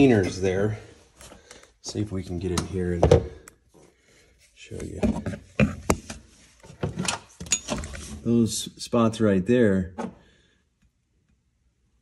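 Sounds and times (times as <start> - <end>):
knocks and rubbing on plastic panels: 4.8 - 7.4.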